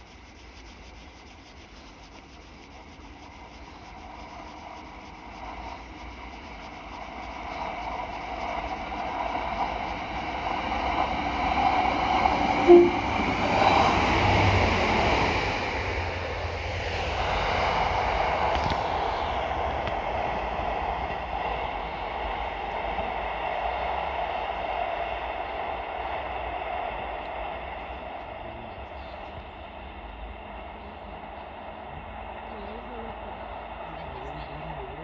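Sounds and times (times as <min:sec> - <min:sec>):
diesel railcar engines: 0:00.0 - 0:35.0
train wheels on rails: 0:01.9 - 0:35.0.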